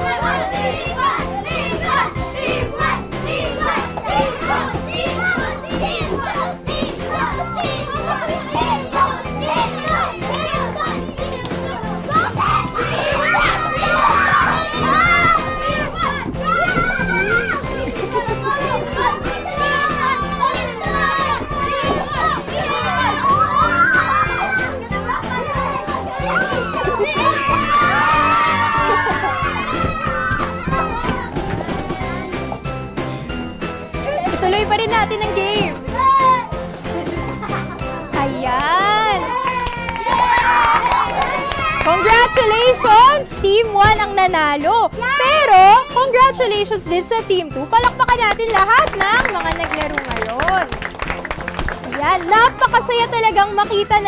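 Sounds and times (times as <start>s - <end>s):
children cheering and calling out: 0.0s - 32.7s, 33.8s - 44.2s, 44.9s - 50.7s
background music with steady beat: 0.0s - 54.0s.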